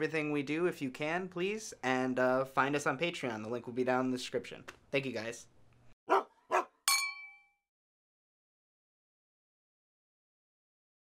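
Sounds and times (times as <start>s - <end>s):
dog-like barks: 6.1s - 6.8s
bright metallic ding: 6.9s - 7.6s.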